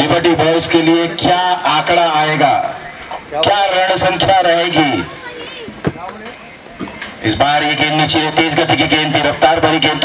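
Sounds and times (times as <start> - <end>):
man talking rapidly: 0.0 - 5.1, 7.2 - 10.0.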